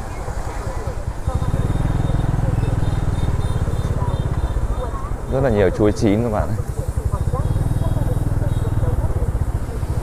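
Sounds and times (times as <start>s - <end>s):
faint chatter: 0.0s - 10.0s
small motorbike engine running: 1.3s - 10.0s.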